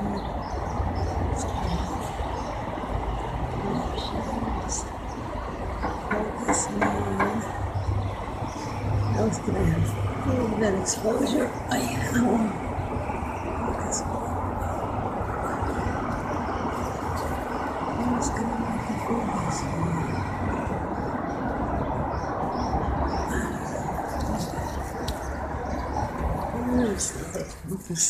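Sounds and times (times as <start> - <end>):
urban rumble and hiss: 0.0 - 28.0.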